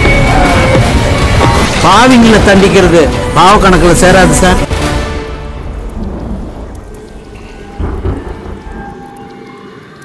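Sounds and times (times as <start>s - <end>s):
rain: 0.0s - 10.0s
thunder rumbling: 5.5s - 9.4s.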